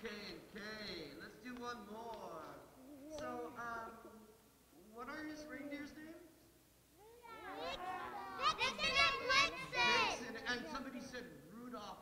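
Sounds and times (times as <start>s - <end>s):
children chattering: 7.0s - 10.8s.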